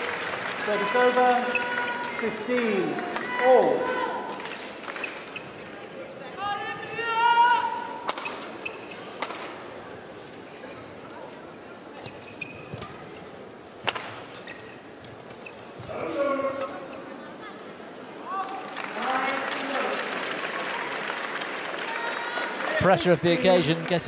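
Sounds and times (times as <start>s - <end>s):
shoes squeaking on court: 5.0s - 5.7s, 8.2s - 9.2s, 11.9s - 13.4s, 14.1s - 17.0s
racket striking shuttlecock: 8.0s - 8.4s.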